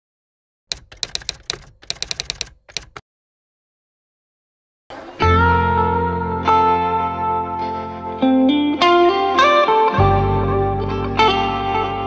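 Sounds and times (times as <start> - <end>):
typewriter keystrokes: 0.7 - 3.0.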